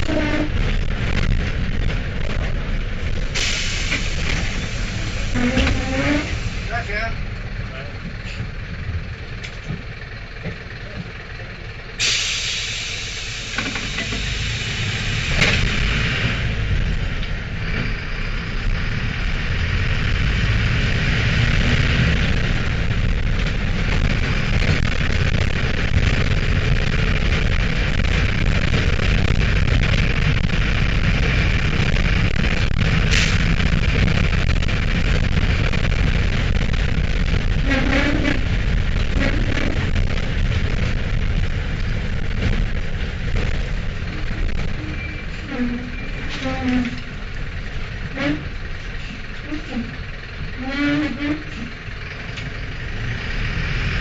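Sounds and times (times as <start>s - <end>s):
diesel engine running: 0.0s - 54.0s
sudden hiss: 3.4s - 5.5s.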